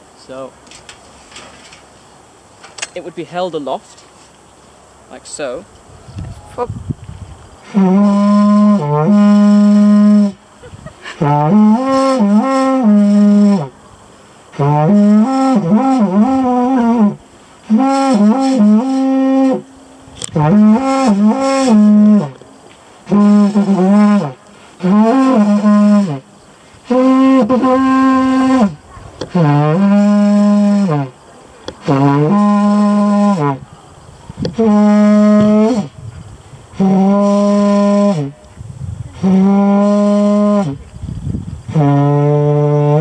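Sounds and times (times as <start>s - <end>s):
war horn blasts: 7.6s - 10.5s, 11.2s - 13.8s, 14.5s - 31.2s, 31.8s - 33.7s, 34.4s - 36.0s, 36.7s - 38.5s, 39.2s - 40.8s, 41.7s - 43.0s.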